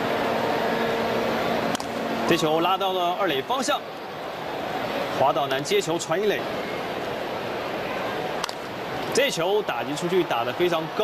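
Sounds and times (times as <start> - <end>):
ballpark crowd noise: 0.0 - 11.0.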